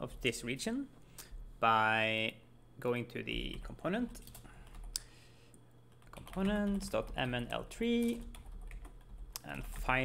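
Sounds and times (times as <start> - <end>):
computer keyboard keystrokes: 4.2 - 5.0, 6.0 - 9.9.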